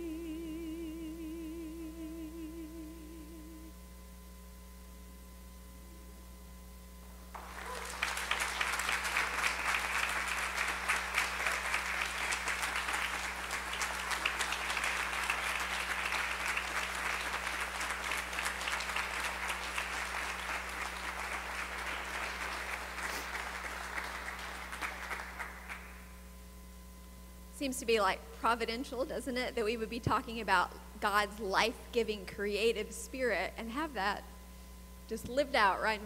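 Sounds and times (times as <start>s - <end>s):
congregation applauding: 7.3s - 26.1s.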